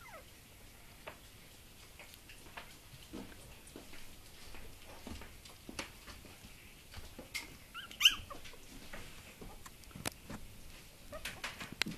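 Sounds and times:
puppy whimpering and yelping: 0.0s - 0.3s, 7.7s - 8.5s.

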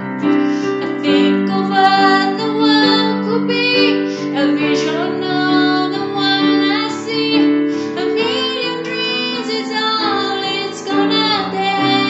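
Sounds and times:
digital piano chords: 0.0s - 12.0s
woman singing: 0.3s - 12.0s.

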